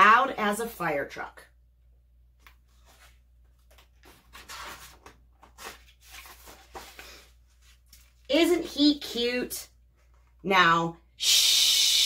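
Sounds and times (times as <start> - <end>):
paper page rustling: 2.4 - 8.3.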